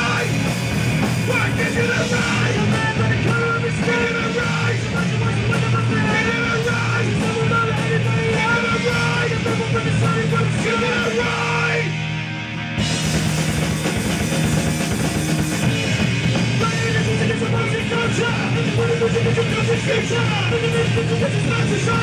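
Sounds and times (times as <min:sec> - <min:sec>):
distorted electric guitars: 0:00.0 - 0:22.0
drum kit: 0:00.0 - 0:22.0
punk band playing live: 0:00.0 - 0:22.0.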